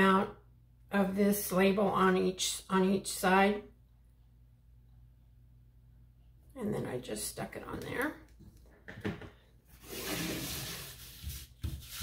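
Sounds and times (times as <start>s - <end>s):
card sliding across mat: 9.7s - 12.0s.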